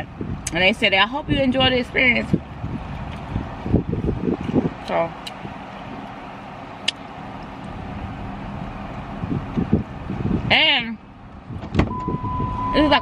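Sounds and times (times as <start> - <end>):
car interior background noise: 0.0 - 13.0
car door latch click: 11.6 - 12.2.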